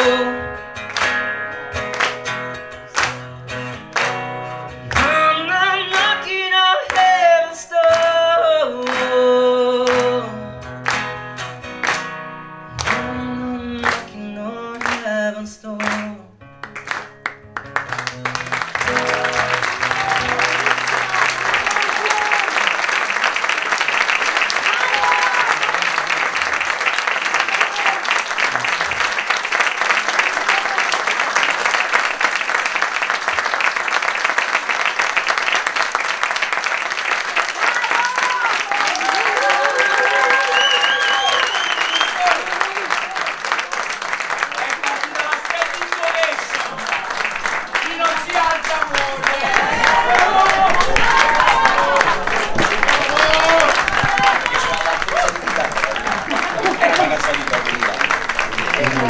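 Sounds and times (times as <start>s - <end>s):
audience applause: 0.8s - 7.0s, 10.8s - 12.1s, 16.6s - 59.0s
people cheering: 17.6s - 59.0s.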